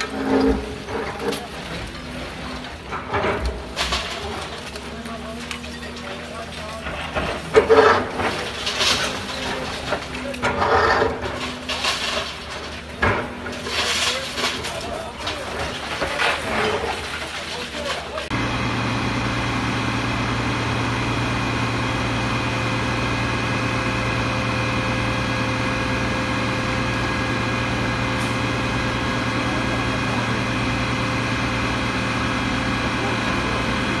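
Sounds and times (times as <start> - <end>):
diesel machinery engine running: 0.0 - 34.0.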